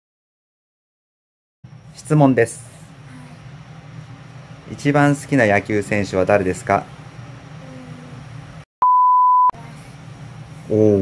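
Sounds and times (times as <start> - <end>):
high-pitched censor bleep: 8.8 - 9.6.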